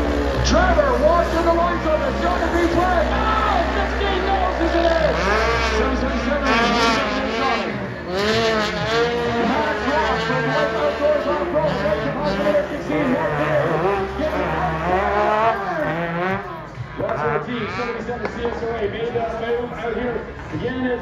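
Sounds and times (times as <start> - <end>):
utv engines revving: 0.0 - 21.0.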